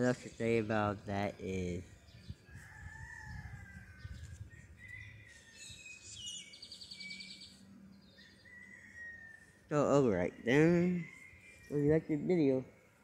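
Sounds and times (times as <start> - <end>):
bird trill: 3.2 - 13.0.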